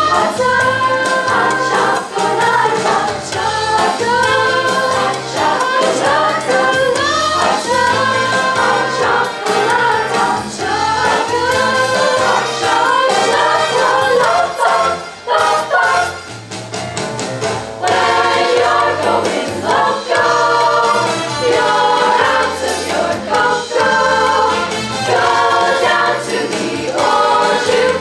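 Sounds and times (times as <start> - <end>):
female choir singing in harmony: 0.0 - 16.3, 17.8 - 28.0.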